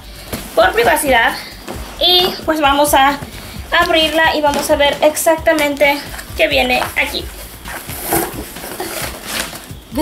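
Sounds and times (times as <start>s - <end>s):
cardboard box rustling: 7.4s - 9.7s.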